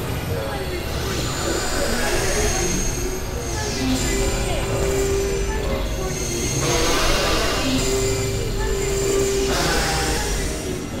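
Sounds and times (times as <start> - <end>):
synthesizer drone: 0.0 - 11.0.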